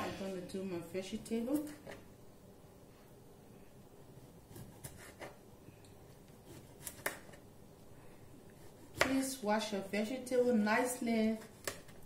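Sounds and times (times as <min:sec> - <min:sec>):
knife slicing on cutting board: 0:04.4 - 0:05.4.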